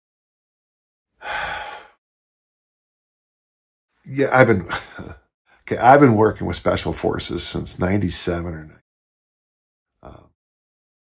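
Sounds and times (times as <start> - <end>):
man sighing: 1.2 - 2.0, 4.6 - 5.2, 10.0 - 10.3.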